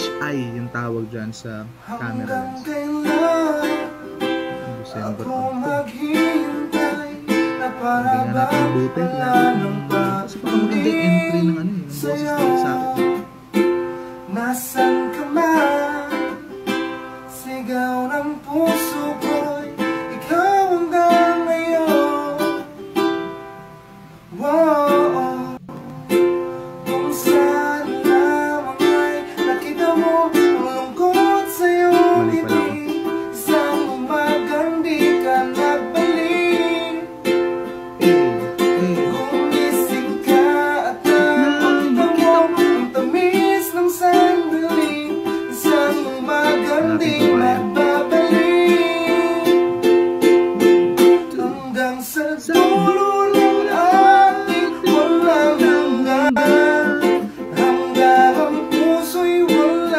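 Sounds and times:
man singing: 0.0 - 13.6, 14.2 - 22.8, 24.3 - 25.8, 26.8 - 59.9
ukulele strumming: 0.0 - 59.9.

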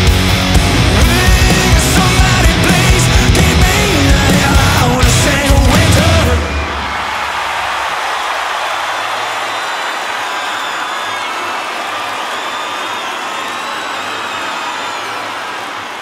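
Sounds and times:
crowd cheering and applauding: 0.0 - 16.0
high sliding whistles: 9.2 - 16.0.

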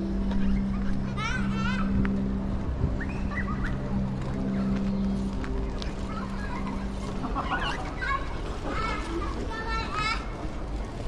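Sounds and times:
children squealing and calling out: 3.0 - 4.8, 6.0 - 10.4.

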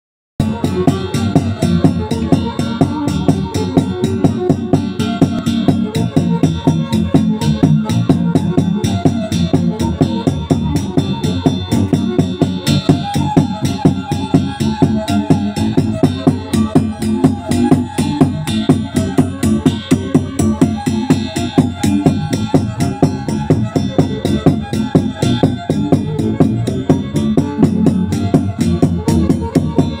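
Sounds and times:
violin playing a tune: 0.4 - 30.0.

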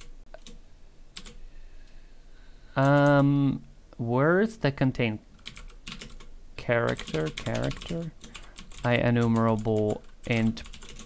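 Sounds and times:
computer keyboard keystrokes: 5.4 - 6.3, 6.9 - 11.0.

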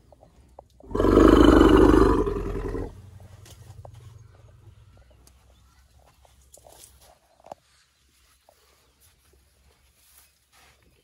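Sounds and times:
elephant roaring: 0.8 - 3.0.

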